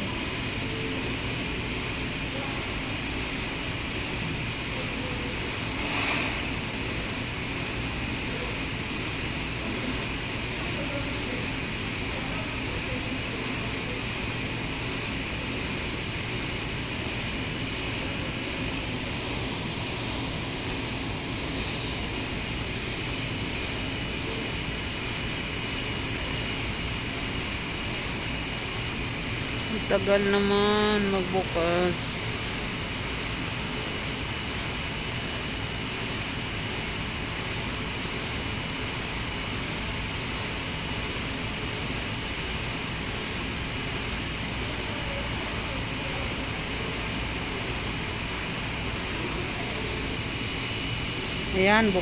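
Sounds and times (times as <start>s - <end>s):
ventilation system drone: 0.0s - 52.0s.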